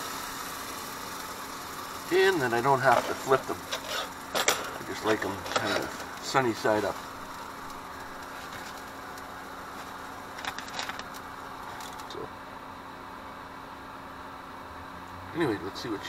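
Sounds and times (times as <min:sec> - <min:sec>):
eggs sizzling in a frying pan: 0:00.0 - 0:12.0.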